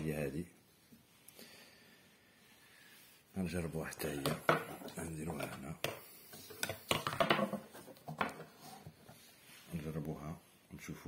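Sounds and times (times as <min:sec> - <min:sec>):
wires rustling and knocking: 0:04.0 - 0:09.2.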